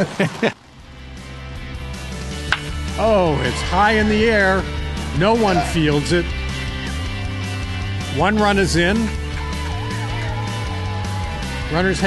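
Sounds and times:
laughter: 0.0s - 0.6s
background music: 0.0s - 12.0s.

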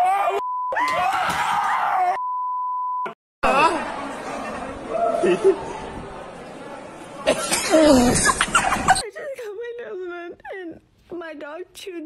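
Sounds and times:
censor bleeps: 0.4s - 0.8s, 2.2s - 3.2s
people talking: 9.0s - 12.0s.

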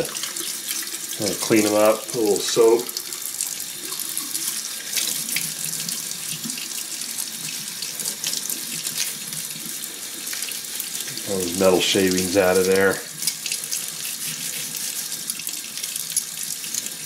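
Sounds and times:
tap water running into sink: 0.0s - 17.0s.

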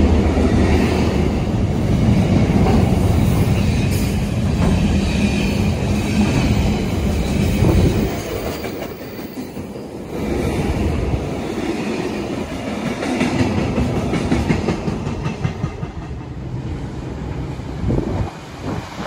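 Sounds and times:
freight train wheels clattering: 11.6s - 16.5s.

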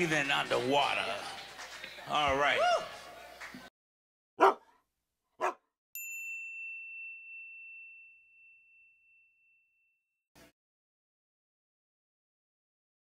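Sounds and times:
dog barks: 4.4s - 4.8s, 5.4s - 5.6s
clear ringing ding: 6.0s - 10.1s.

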